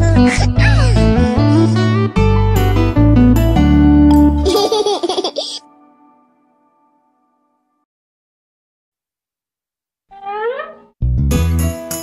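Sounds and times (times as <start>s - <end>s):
cartoon baby laughing: 0.0s - 1.1s, 4.4s - 5.6s.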